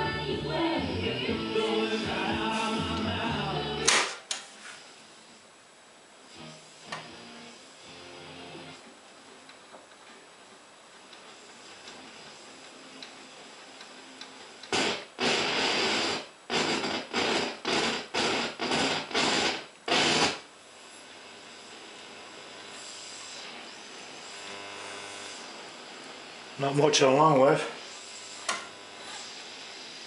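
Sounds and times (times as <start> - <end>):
radio static bursts: 0.0 - 5.2, 11.2 - 30.0
radio hiss and hum: 0.0 - 30.0.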